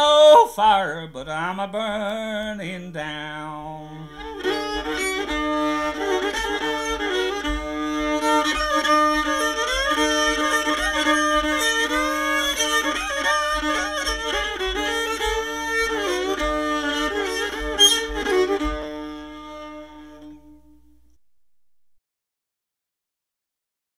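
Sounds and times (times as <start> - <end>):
fiddle playing: 3.4 - 21.1
banjo accompaniment: 4.1 - 21.1.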